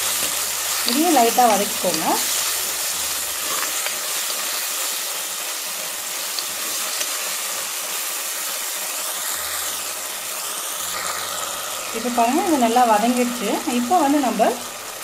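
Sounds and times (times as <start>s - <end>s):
food sizzling in hot oil: 0.0s - 15.0s.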